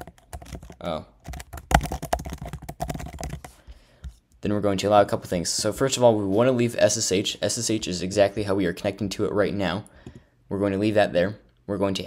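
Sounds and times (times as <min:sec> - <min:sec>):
rapid typing on keyboard: 0:00.0 - 0:03.6.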